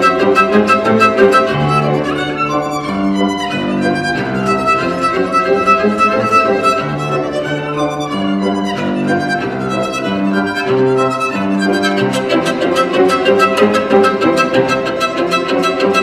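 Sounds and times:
violin melody: 0.0s - 16.0s.

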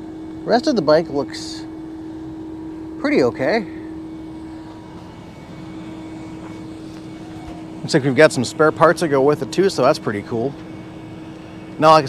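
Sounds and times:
outdoor background noise: 0.0s - 12.0s
steady mechanical drone: 0.0s - 12.0s.

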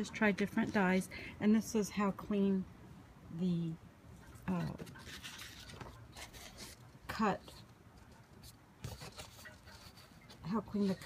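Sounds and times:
rustling of paper and leather: 4.2s - 11.0s.

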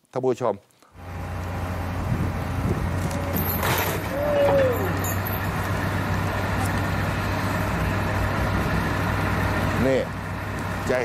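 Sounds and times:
diesel machinery running: 1.0s - 11.0s.

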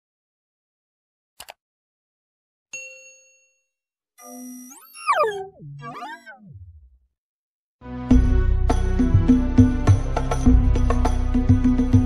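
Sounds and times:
bell-like notification ding: 2.8s - 3.7s.

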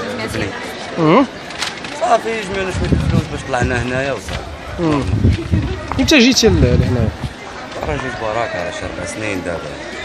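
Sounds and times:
interview talk: 0.0s - 10.0s.

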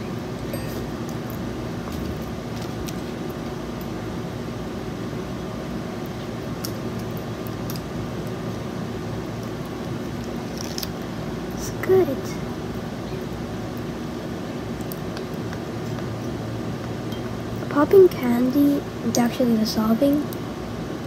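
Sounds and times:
electric fan humming: 0.0s - 21.0s.

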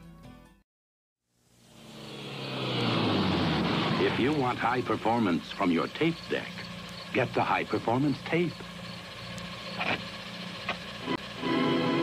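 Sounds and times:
car engine hum: 1.4s - 12.0s
road noise: 1.4s - 12.0s.

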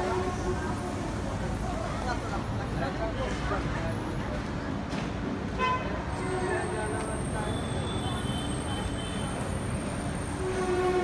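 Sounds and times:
busy outdoor background: 0.0s - 11.0s.

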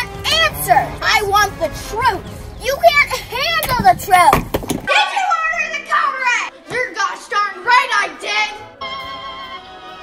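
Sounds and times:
children speaking excitedly: 0.0s - 8.7s.

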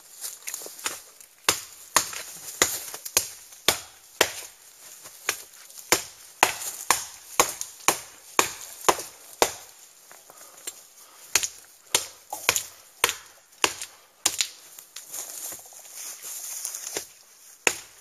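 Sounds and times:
knife chopping wood: 0.8s - 9.8s, 10.6s - 14.6s, 16.9s - 18.0s.

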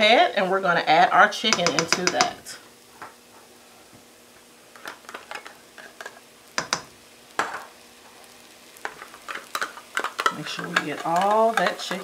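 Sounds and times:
faint sizzle from pan: 0.0s - 12.0s.

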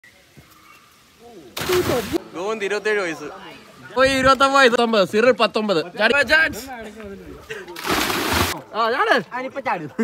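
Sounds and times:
loud splash of water: 1.6s - 2.2s, 7.8s - 8.6s.

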